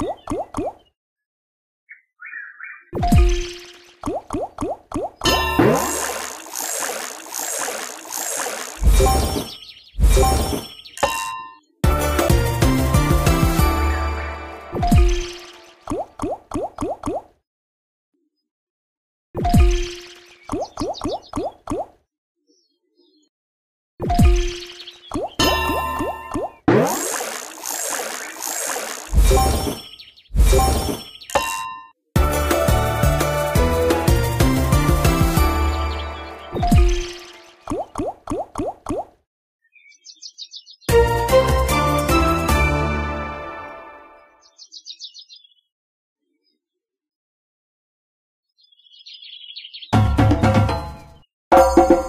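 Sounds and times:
slot game music: 0:05.3 - 0:10.8, 0:11.8 - 0:15.8, 0:32.2 - 0:37.6, 0:40.9 - 0:44.4
bright busy jingle: 0:11.8 - 0:14.7, 0:32.2 - 0:36.5
short rising bloops: 0:25.1 - 0:29.8
watery bubbling burst: 0:26.0 - 0:29.5.

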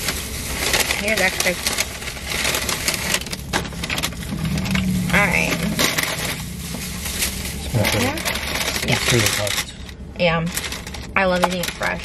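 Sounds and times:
plastic and paper bags rustling: 0:00.0 - 0:12.0.

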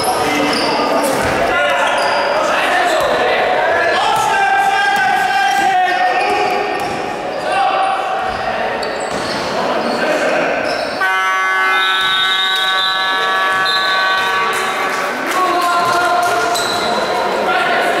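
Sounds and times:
court noise: 0:00.0 - 0:18.0
players' voices: 0:00.0 - 0:18.0
scoreboard horn: 0:11.0 - 0:14.7.

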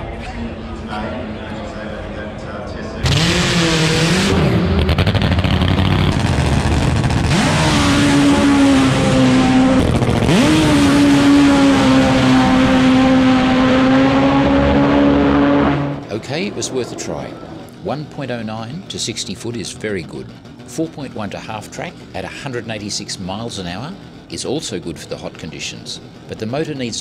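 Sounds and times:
drag motorcycle engine at full throttle: 0:03.0 - 0:27.0.

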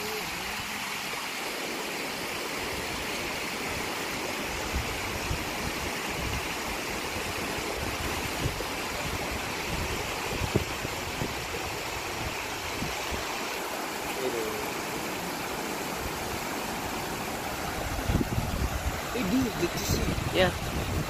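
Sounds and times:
stream water over weir and rocks: 0:00.0 - 0:21.0.

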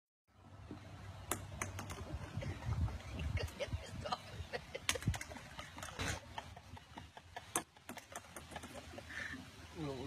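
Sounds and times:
ball bouncing on wooden deck: 0:00.7 - 0:03.0, 0:07.5 - 0:08.8.

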